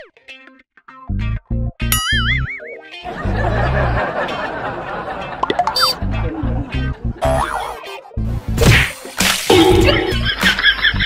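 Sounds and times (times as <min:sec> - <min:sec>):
background music: 0:01.1 - 0:11.0.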